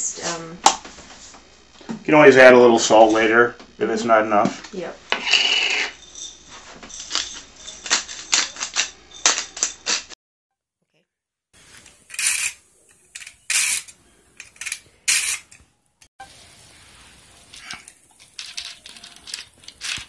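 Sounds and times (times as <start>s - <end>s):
spice mill grinding: 11.6s - 15.6s, 17.4s - 20.0s.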